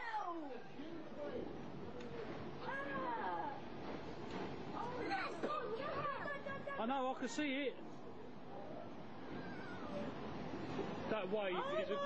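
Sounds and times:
steady rushing noise: 1.0 - 12.0.

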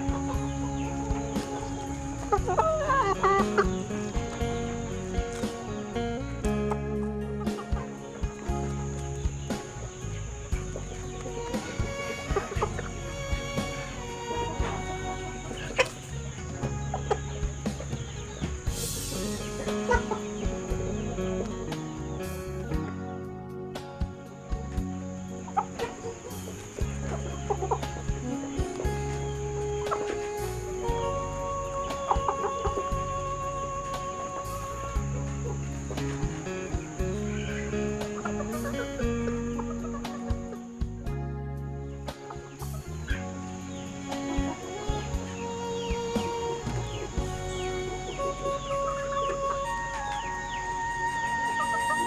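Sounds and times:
chickens clucking: 0.0 - 41.1, 41.8 - 52.0
background music: 0.0 - 52.0.

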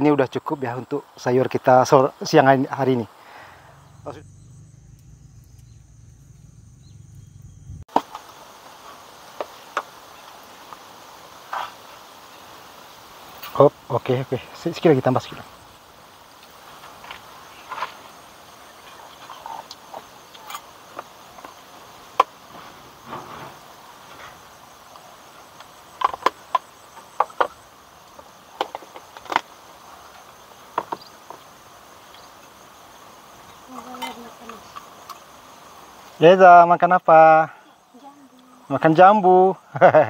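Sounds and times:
insects chirring: 0.0 - 40.0.

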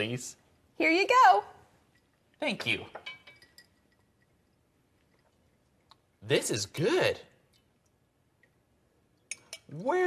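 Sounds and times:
glass clinking: 1.9 - 5.6, 9.2 - 9.8.

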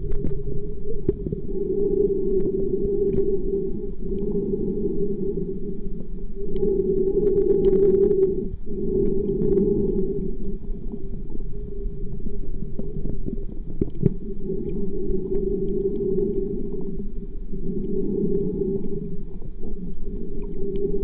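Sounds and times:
muffled underwater rumble: 0.0 - 21.0
faint ticks: 4.0 - 4.8, 5.9 - 11.8, 12.7 - 21.0.

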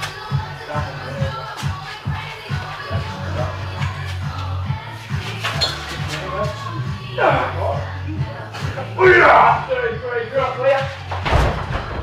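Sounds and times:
men's voices: 0.0 - 11.2
car landing with heavy thud: 11.2 - 12.0.

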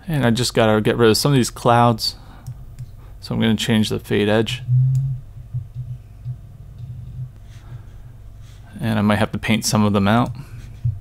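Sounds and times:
low uneven hum: 0.0 - 11.0.

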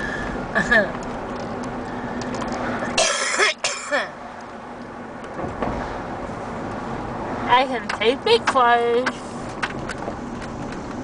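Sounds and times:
road rumble inside car: 0.0 - 11.0
person coughing: 3.0 - 4.1.

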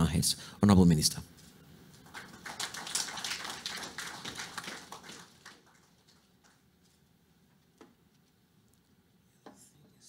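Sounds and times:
audience applause: 2.0 - 6.7.

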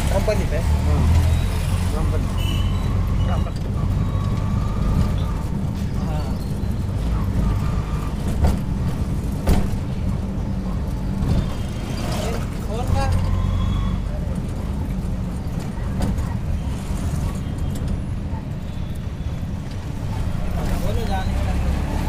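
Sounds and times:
road noise: 0.0 - 22.0.

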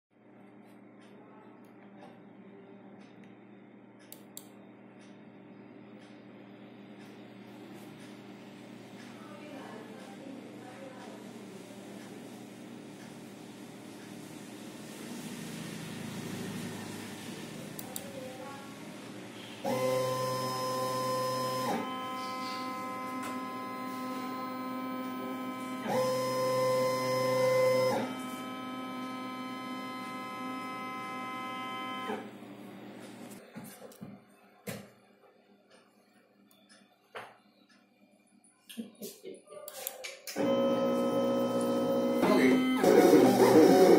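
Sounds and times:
stepper motors whining: 19.6 - 32.3, 40.4 - 43.9.

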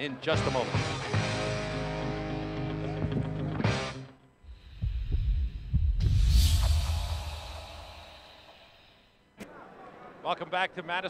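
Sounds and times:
deep low thumps: 4.4 - 7.9.

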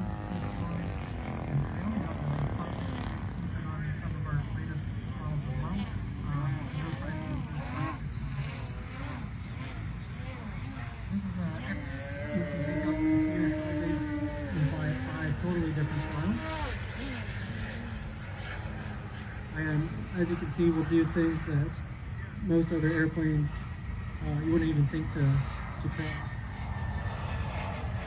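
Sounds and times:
steady low rumble: 0.0 - 28.0.

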